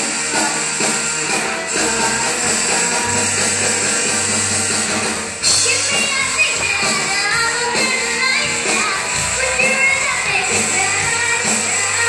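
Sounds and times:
drum kit with cymbals: 0.0 - 12.0
electric guitars: 0.0 - 12.0.

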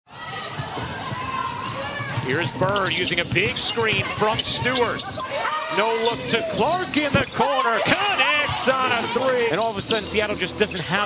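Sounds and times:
indoor arena hum: 0.1 - 11.0
basketball dribbled on hardwood: 0.6 - 4.7.

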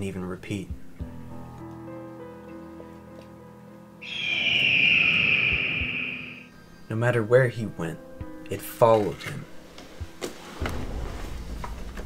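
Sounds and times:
soft background music: 0.0 - 4.0, 5.6 - 12.0
eagle screech: 4.0 - 6.5.

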